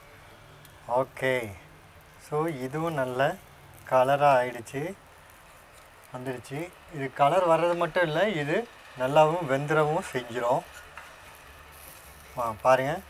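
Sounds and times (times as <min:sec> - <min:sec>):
food sizzling in a pan: 0:00.0 - 0:13.0
man talking: 0:02.2 - 0:05.0, 0:06.2 - 0:10.7, 0:12.4 - 0:13.0.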